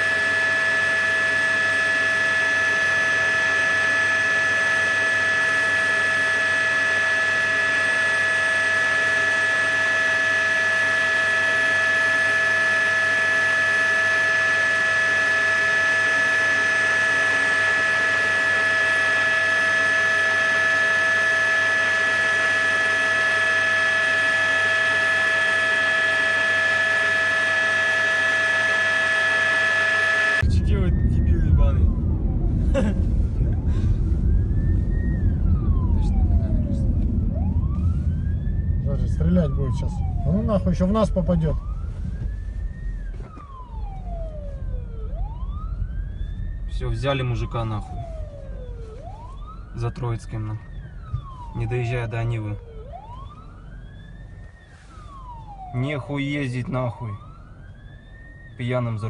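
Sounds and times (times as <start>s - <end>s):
helicopter turbine whine: 0.0s - 59.0s.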